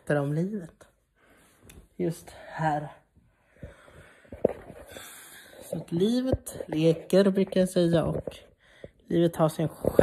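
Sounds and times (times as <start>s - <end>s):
breathing close to microphone: 1.1s - 5.9s, 8.4s - 9.1s.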